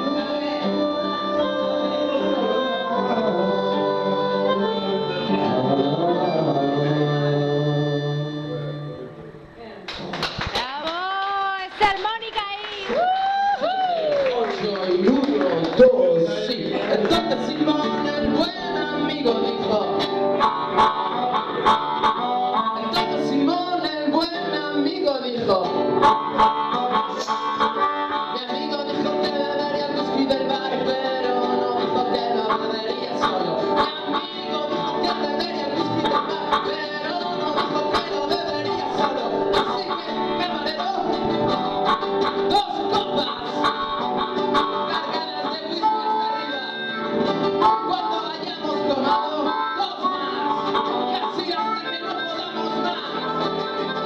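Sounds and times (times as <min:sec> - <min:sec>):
harmonica playing blues: 0:00.0 - 0:09.3, 0:17.2 - 0:54.0
acoustic guitar strumming: 0:00.0 - 0:09.6, 0:15.0 - 0:54.0.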